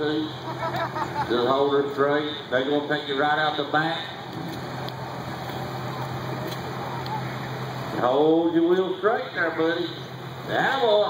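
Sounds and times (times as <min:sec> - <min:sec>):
engine humming steadily: 0:00.0 - 0:11.0
outdoor background noise: 0:00.0 - 0:11.0.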